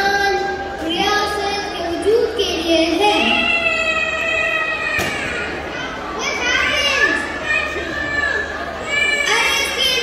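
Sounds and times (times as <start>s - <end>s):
children's voices in a large hall: 0.0s - 10.0s.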